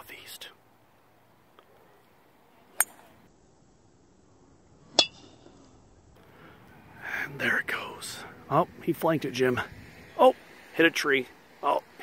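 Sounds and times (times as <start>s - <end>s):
faint steady background noise: 0.0s - 12.0s.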